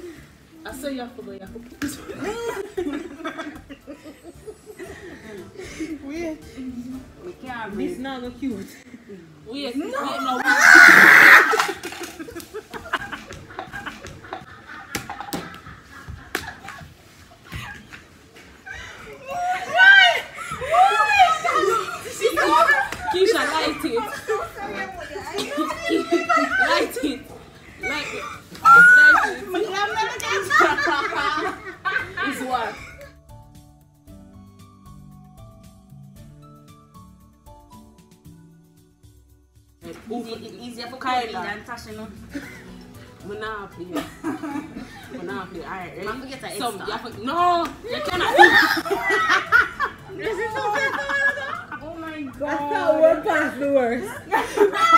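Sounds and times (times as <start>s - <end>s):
women laughing: 2.0s - 6.8s, 10.0s - 27.2s, 27.8s - 33.1s, 43.9s - 45.4s, 47.8s - 54.9s
women talking: 6.0s - 10.7s, 19.2s - 32.9s, 43.2s - 49.5s, 50.1s - 54.9s
high squealing laugh: 10.4s - 11.8s, 28.2s - 29.3s.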